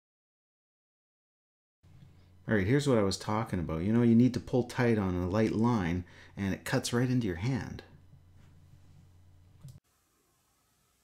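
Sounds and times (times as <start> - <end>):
faint low hum: 1.9 - 11.0.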